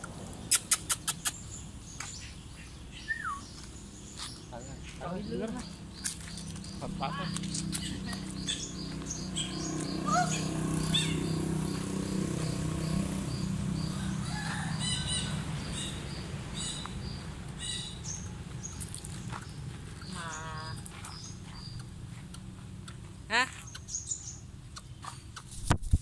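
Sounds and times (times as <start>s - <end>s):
birds chirping: 0.2s - 25.6s
wavering bird call: 9.4s - 11.3s.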